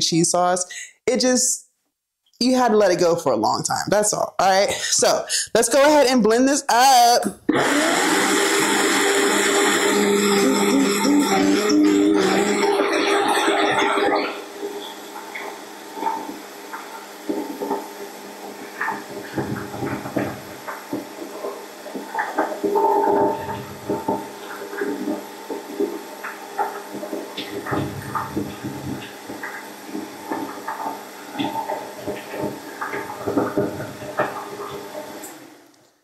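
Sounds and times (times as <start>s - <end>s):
blender motor running: 7.5s - 14.6s.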